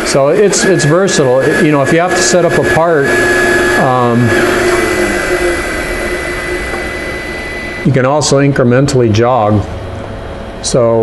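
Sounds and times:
high-pitched whine: 0.0s - 11.0s
machinery whirring hiss: 0.0s - 11.0s.

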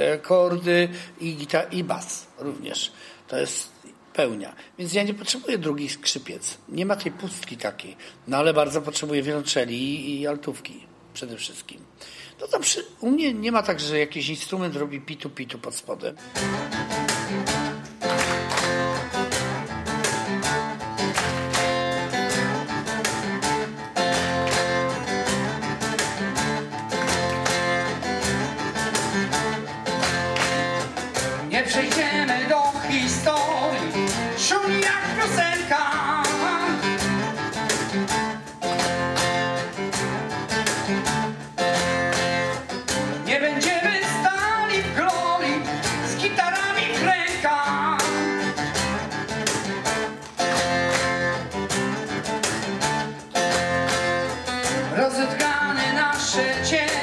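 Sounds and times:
acoustic guitar: 12.0s - 57.0s
cajon beat: 16.2s - 57.0s
man singing rock vocal: 31.5s - 37.0s, 43.2s - 48.4s, 54.9s - 57.0s.

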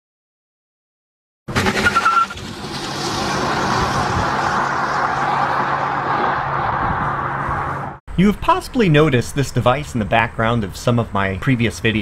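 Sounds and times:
steady rushing noise: 2.4s - 8.0s.

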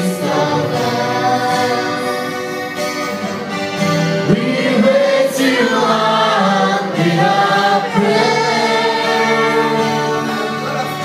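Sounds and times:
group singing worship song: 0.0s - 11.0s
instrumental accompaniment: 0.0s - 11.0s.

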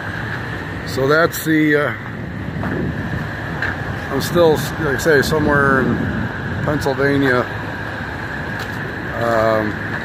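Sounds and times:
diesel trucks idling: 0.0s - 10.0s
wind on microphone: 0.0s - 10.0s.

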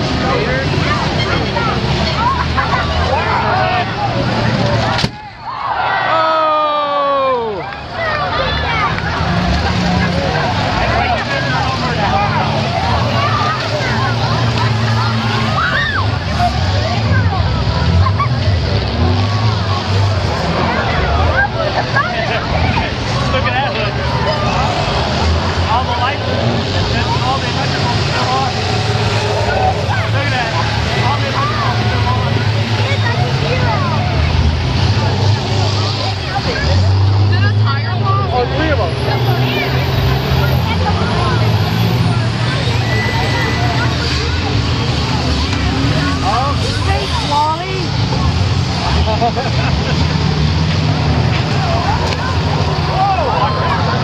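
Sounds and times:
bus engines revving: 0.0s - 54.0s
crowd talking and shouting: 0.0s - 54.0s.

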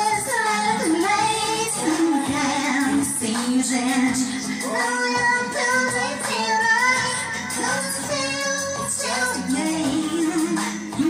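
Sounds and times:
backing track: 0.0s - 11.0s
woman singing into microphone: 0.0s - 11.0s.

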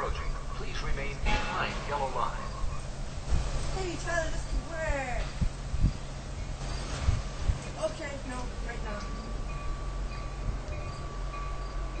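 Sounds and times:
train rumbling: 0.0s - 12.0s.

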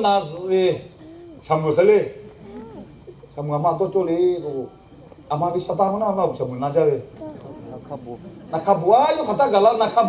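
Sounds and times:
man preaching: 0.0s - 2.2s, 5.3s - 10.0s.

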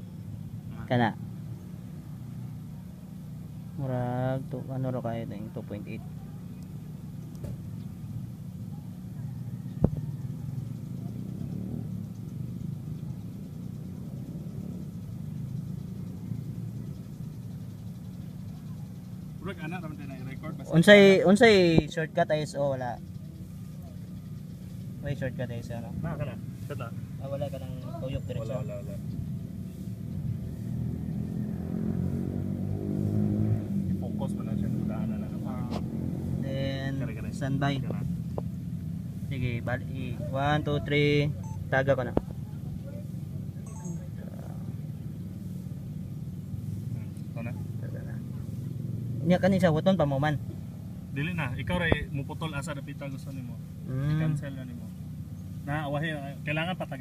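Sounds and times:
low engine-like hum: 0.0s - 57.0s
voices talking quietly: 0.0s - 57.0s.

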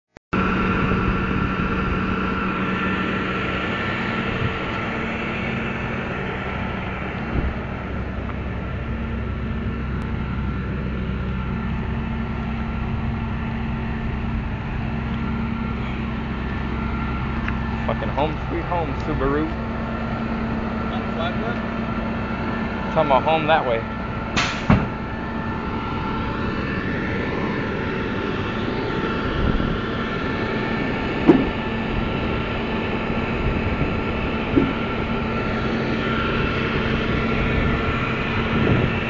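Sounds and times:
truck engine idling: 0.4s - 39.0s.

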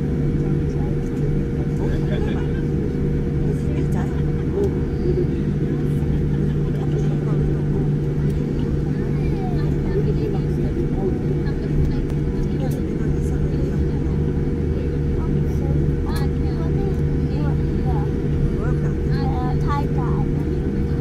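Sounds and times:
airliner cabin rumble and hum: 0.0s - 21.0s.

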